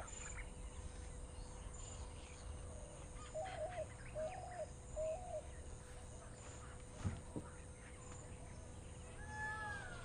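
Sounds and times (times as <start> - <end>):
bird calling: 1.6 - 5.7.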